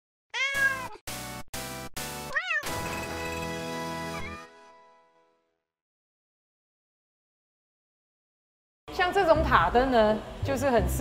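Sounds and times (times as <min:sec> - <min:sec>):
cat meowing: 0:00.4 - 0:01.0, 0:02.3 - 0:02.8.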